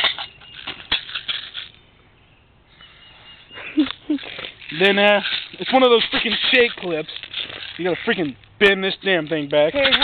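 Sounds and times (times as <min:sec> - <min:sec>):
plastic gun rattling: 0:04.1 - 0:08.3, 0:09.2 - 0:10.0.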